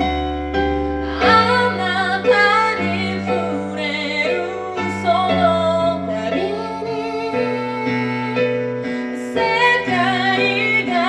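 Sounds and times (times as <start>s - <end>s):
electronic keyboard piano chords: 0.0s - 11.0s.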